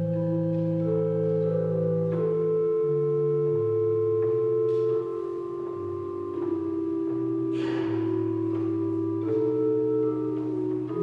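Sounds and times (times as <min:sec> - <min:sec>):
chest organ playing chords: 0:00.0 - 0:11.0.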